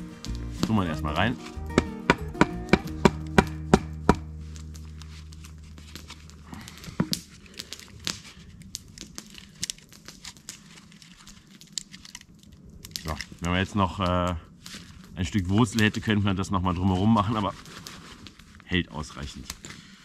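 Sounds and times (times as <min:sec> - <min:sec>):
low held music chord with ticks: 0:00.0 - 0:07.6
crackles of cone pressed into stick: 0:00.0 - 0:19.9.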